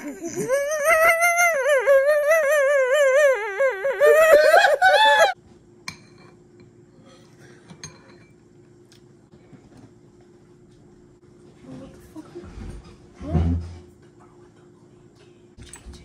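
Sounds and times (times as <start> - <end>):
woman's wavering laughter: 0.0 - 5.4
faint steady hum: 0.0 - 16.0
dishes and cutlery clinking: 5.9 - 6.7, 7.6 - 8.4.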